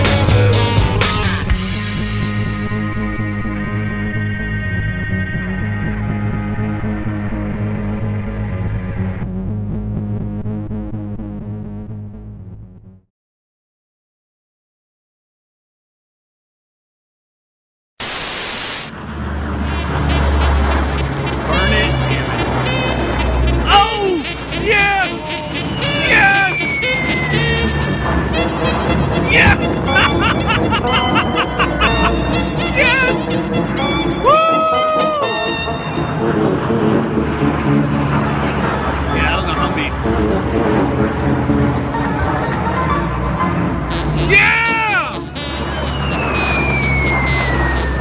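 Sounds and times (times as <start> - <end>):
aircraft drone overhead: 0.0 - 9.5, 18.9 - 44.3, 45.1 - 48.0
music: 0.0 - 13.1, 19.0 - 48.0
static hiss: 18.0 - 18.9
people calling out: 23.6 - 33.4, 34.1 - 35.5
people's voices: 23.6 - 33.4.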